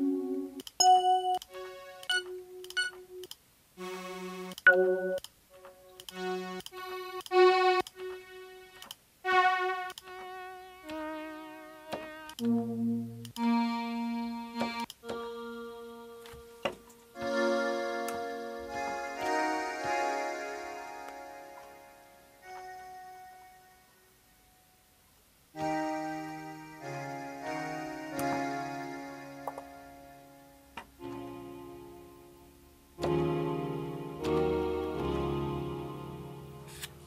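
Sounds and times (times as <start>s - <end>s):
synthesizer pad chords: 0.0s - 8.7s, 25.6s - 37.0s.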